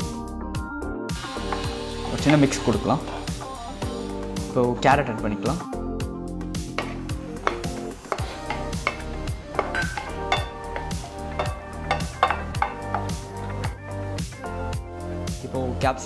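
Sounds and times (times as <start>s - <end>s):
background music with steady beat: 0.0s - 16.0s
spatula stirring vegetables in pan: 1.2s - 4.1s, 6.7s - 13.8s.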